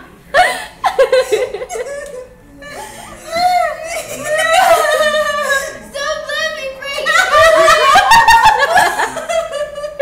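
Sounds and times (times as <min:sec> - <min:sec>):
people laughing: 0:00.3 - 0:05.9, 0:06.9 - 0:10.0.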